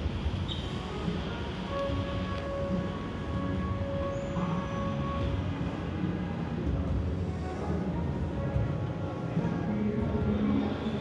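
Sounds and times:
faint background music: 0:00.0 - 0:11.0
low rumble of mall ambience: 0:00.0 - 0:11.0.

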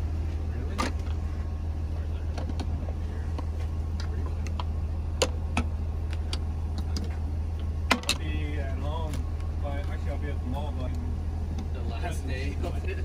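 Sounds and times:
muffled voices talking: 0:00.0 - 0:05.2, 0:06.2 - 0:13.0
engine idling: 0:00.0 - 0:13.0.

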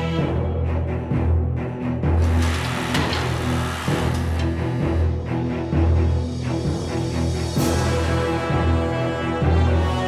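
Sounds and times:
dramatic music with pulsing bass: 0:00.0 - 0:10.0
hydraulic press crushing: 0:02.2 - 0:05.2.

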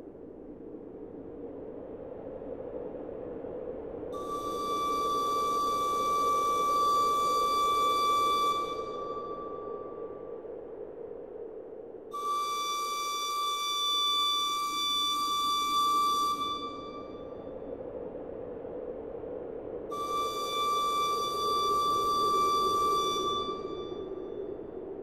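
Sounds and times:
flute playing long high notes: 0:04.2 - 0:09.8, 0:12.2 - 0:17.3, 0:19.9 - 0:24.4.

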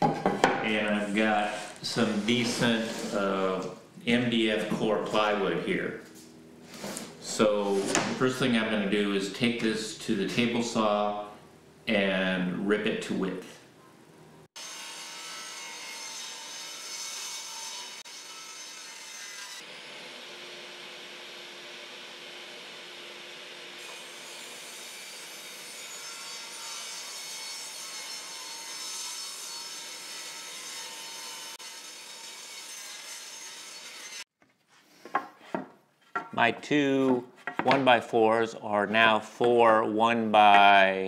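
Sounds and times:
table saw cutting wood: 0:00.0 - 0:05.6, 0:14.6 - 0:34.3.

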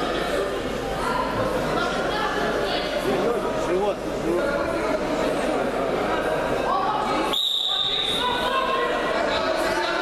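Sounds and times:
spectators chattering: 0:00.0 - 0:10.0
referee's whistle blast: 0:07.3 - 0:08.2.

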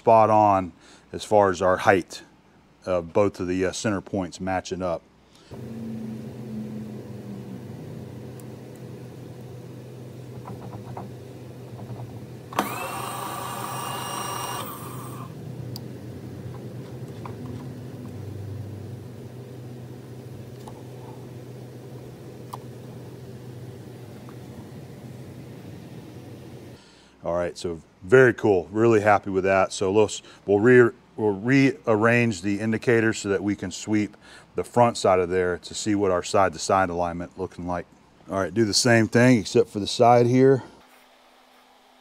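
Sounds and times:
milling machine electric hum: 0:05.5 - 0:26.8
power feed motor whine: 0:05.5 - 0:26.8.

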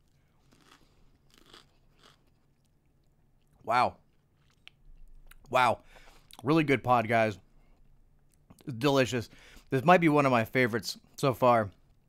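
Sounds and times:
chewing crunchy pepper: 0:00.0 - 0:05.5.

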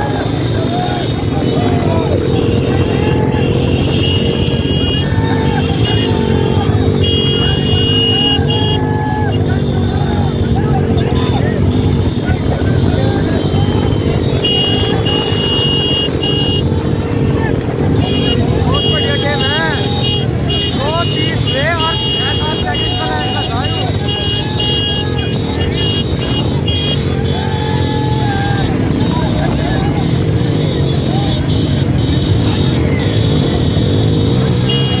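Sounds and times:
people shouting: 0:00.0 - 0:33.5
motorcycle engine running: 0:00.0 - 0:35.0.

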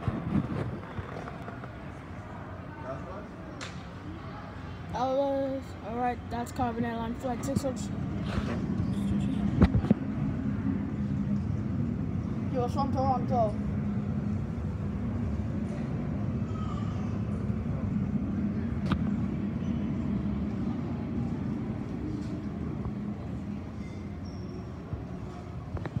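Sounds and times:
jet engines rumbling: 0:00.0 - 0:04.9, 0:05.7 - 0:26.0.

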